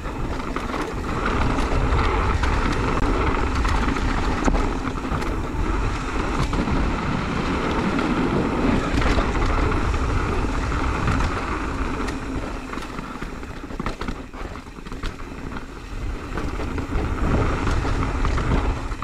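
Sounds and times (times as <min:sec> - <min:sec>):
small clicks and rattles: 0:00.0 - 0:06.9, 0:07.5 - 0:19.0
tyre noise on dirt: 0:00.0 - 0:19.0
wind buffeting microphone: 0:00.0 - 0:19.0.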